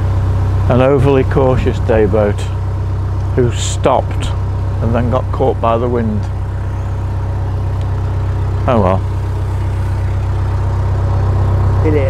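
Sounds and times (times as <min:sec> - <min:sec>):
boat engine thrumming: 0:00.0 - 0:12.0.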